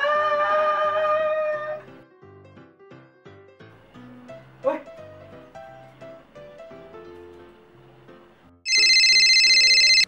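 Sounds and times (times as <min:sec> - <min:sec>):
soft background music: 0:00.0 - 0:10.0
warbling electronic ringtone: 0:08.7 - 0:10.0.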